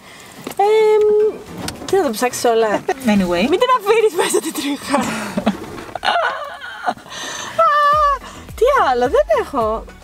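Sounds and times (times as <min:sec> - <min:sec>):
woman laughing heartily: 0:04.2 - 0:08.2.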